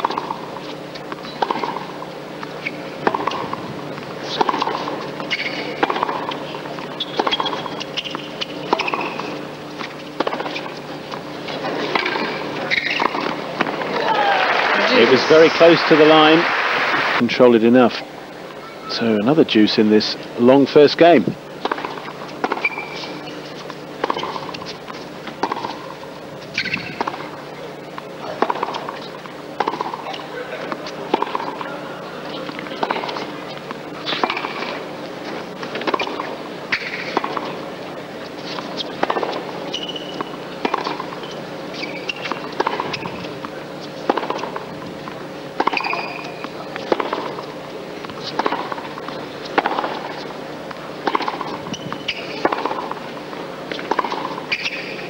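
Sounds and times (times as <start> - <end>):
tennis rackets hitting ball: 0.0 - 17.2, 21.6 - 55.0
shoe squeaks: 2.6 - 2.9, 5.3 - 9.4, 12.2 - 13.2, 22.6 - 24.8, 26.5 - 27.0, 39.7 - 40.4, 41.1 - 43.2, 45.7 - 46.5, 51.5 - 52.4, 54.5 - 55.0.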